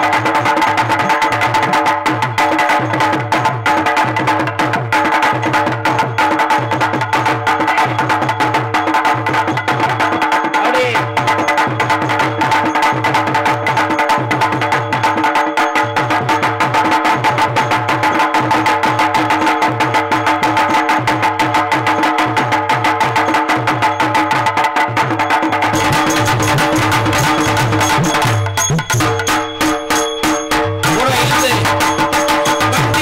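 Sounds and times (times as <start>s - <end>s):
fast drumming: 0.0s - 33.0s.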